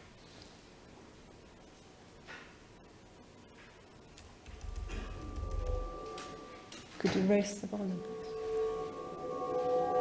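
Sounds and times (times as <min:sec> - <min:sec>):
steady high held tone: 0:04.4 - 0:10.0.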